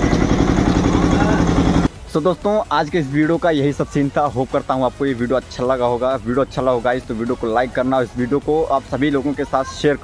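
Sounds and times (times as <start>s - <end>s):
small engine idling: 0.0s - 1.9s.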